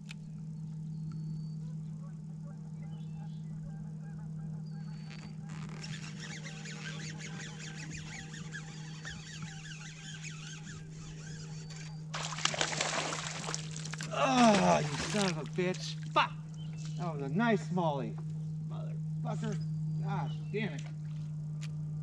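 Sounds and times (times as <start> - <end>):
low steady hum: 0.0 - 22.0
geese honking: 1.6 - 12.4
fish splashing at surface: 12.2 - 15.6.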